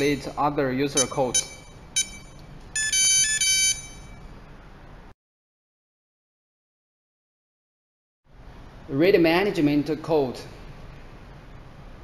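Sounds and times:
keypad buzzer electronic tune: 1.0s - 4.2s.

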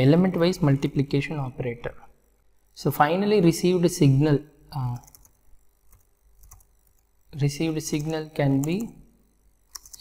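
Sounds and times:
faint keyboard typing: 4.8s - 9.0s, 9.7s - 10.0s.

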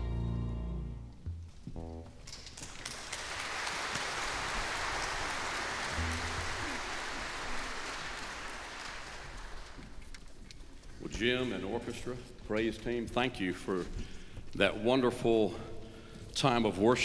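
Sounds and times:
congregation applauding: 2.3s - 10.2s.

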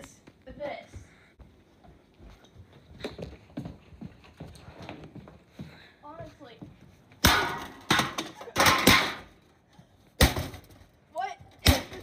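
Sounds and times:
running footsteps on hardwood floor: 0.0s - 7.0s.

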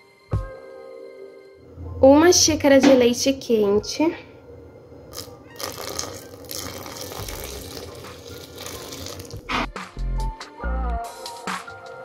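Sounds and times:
background music: 0.0s - 12.0s
milk pouring into batter: 5.1s - 9.5s.

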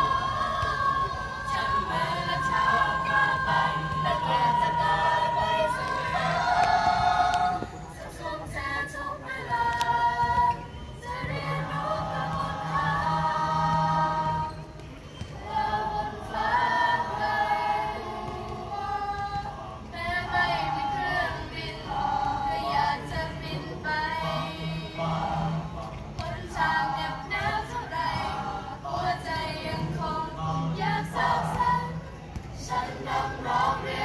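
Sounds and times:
mixed choir singing: 0.0s - 34.0s.

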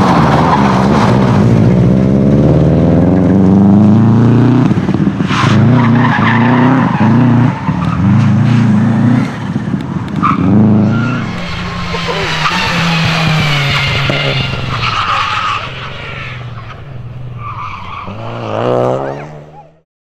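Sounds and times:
rally car engine revving hard: 0.0s - 19.6s
second rally car engine: 0.0s - 19.8s
tyres squealing: 10.2s - 19.7s.

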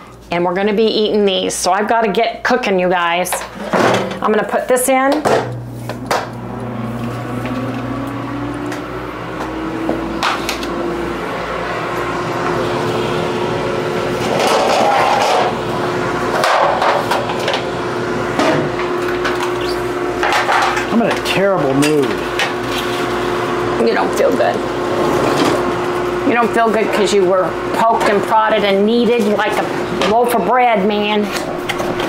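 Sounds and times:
steady electric hum: 0.0s - 32.0s.

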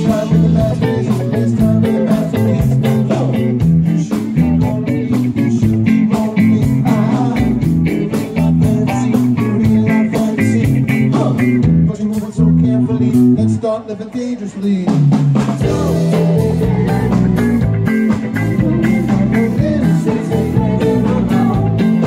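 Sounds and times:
drum kit beat: 0.0s - 12.3s, 14.7s - 22.0s
electric guitar: 0.0s - 13.7s, 14.9s - 22.0s
bass guitar: 0.0s - 22.0s.

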